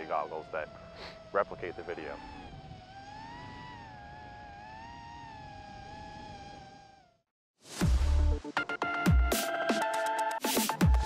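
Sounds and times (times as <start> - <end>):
drone motors whining: 0.0 - 7.3.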